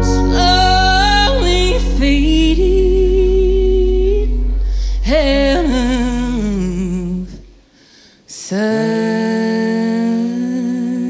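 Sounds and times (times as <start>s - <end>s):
acoustic country band playing: 0.0s - 2.9s
woman singing: 0.0s - 7.5s, 8.3s - 11.0s.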